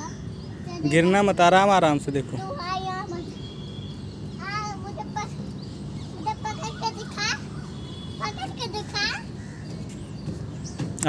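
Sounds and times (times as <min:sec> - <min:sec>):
low outdoor background noise: 0:00.0 - 0:11.0.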